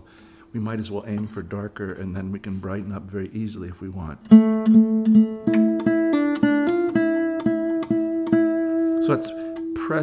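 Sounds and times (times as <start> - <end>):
guitar picked single notes: 4.2 - 10.0.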